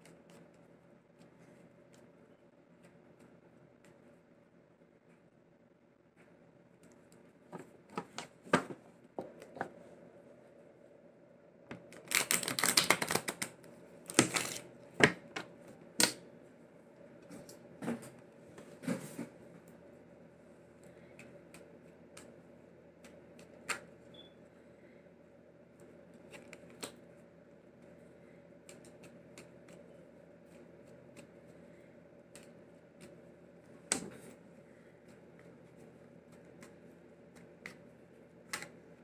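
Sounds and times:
steady low hum: 0.0 - 39.0
cards being riffle-shuffled: 11.8 - 15.2.

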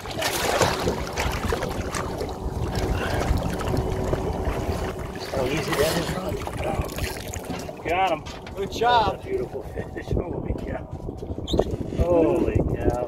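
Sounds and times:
fish splashing in water: 0.0 - 7.8
wind buffeting microphone: 0.0 - 13.0.

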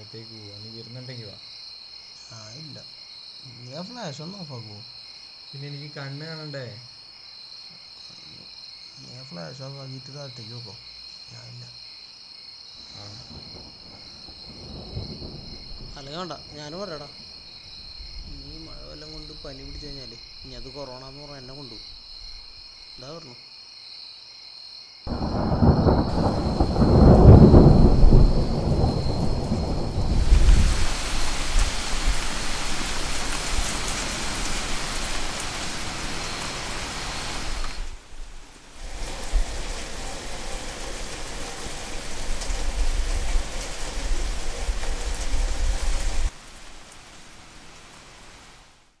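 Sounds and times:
steady rain: 2.3 - 6.9, 12.8 - 23.3, 25.1 - 49.0
thunder rumbling: 13.1 - 17.4, 25.1 - 38.2, 38.8 - 46.3.

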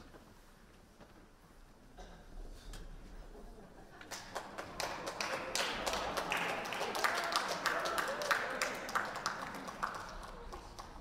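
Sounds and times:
audience applauding: 4.1 - 11.0.

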